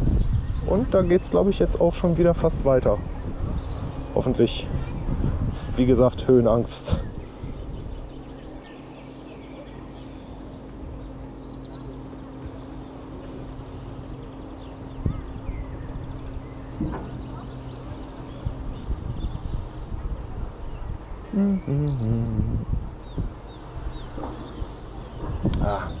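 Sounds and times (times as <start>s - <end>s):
wind noise on microphone: 0.0s - 8.9s, 12.2s - 26.0s
low machine hum: 0.0s - 26.0s
faint bird chirps: 6.9s - 26.0s.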